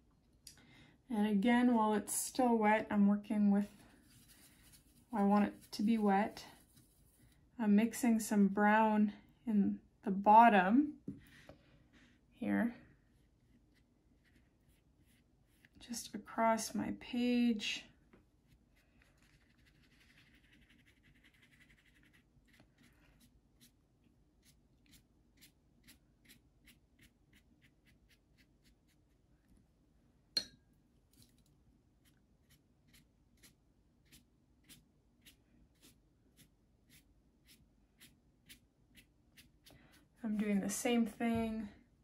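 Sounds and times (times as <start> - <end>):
brush on wet paper: 3.6 - 7.5, 11.2 - 12.3, 13.1 - 15.8, 18.4 - 23.8, 32.0 - 40.2.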